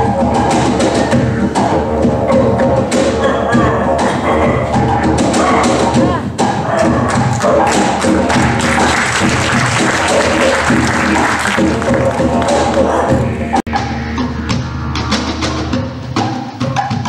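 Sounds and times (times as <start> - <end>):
low drone: 7.4 - 15.9.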